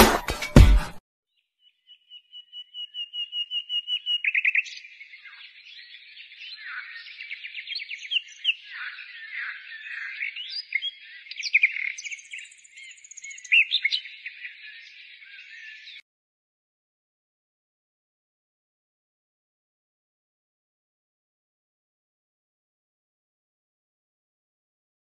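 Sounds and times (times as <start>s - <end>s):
songbird singing: 1.3s - 16.0s.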